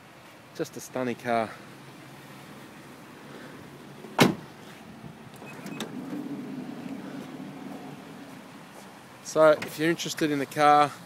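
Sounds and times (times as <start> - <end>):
sliding door motor hum: 5.4 - 8.5.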